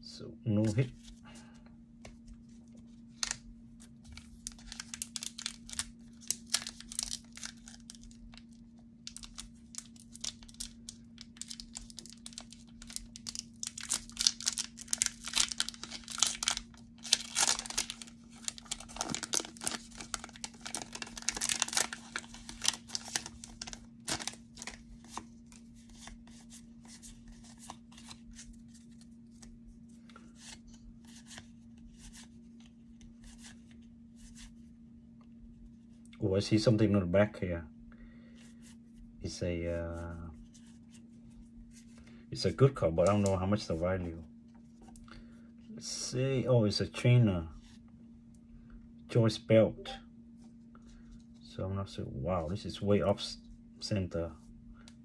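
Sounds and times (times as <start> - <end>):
faint low hum: 0.0 - 55.0
foil pack tearing and crinkling: 4.2 - 8.5, 9.1 - 25.2.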